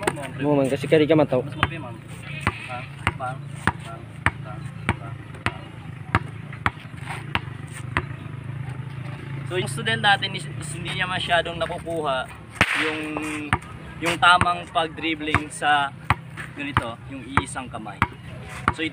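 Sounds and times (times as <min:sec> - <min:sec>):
basketball bouncing on concrete: 0:00.0 - 0:00.4, 0:01.5 - 0:08.2, 0:13.0 - 0:18.9.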